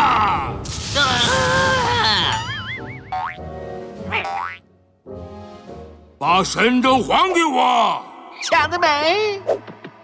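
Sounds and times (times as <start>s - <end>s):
cartoon soundtrack music: 0.0s - 7.6s.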